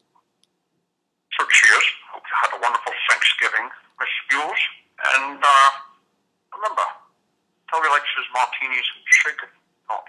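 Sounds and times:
man speaking on telephone message: 0:01.3 - 0:07.1, 0:07.7 - 0:10.0.

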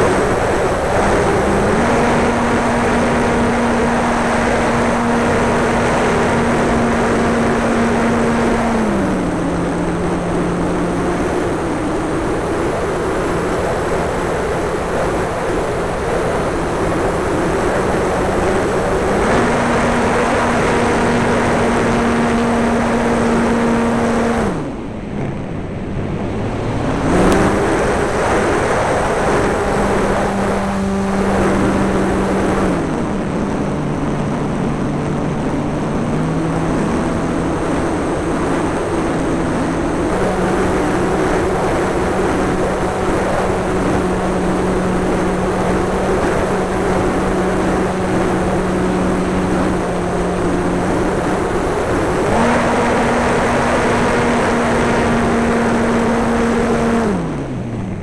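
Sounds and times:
model plane engine and propeller: 0:00.0 - 0:58.0
wind rush: 0:00.0 - 0:58.0.

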